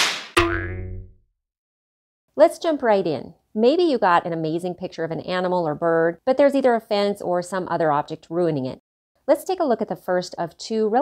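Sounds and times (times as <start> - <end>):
twangy boing: 0.4 - 1.2.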